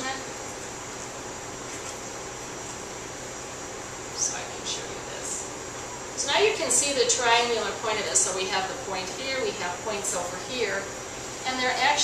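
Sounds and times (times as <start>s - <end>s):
constant hiss: 0.0s - 12.0s.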